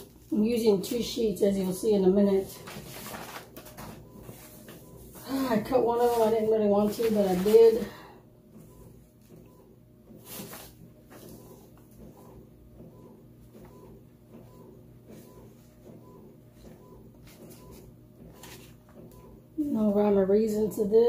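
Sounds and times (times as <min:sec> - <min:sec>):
low steady hum: 0:00.0 - 0:21.0
paper rustling: 0:02.5 - 0:08.0, 0:10.2 - 0:11.4.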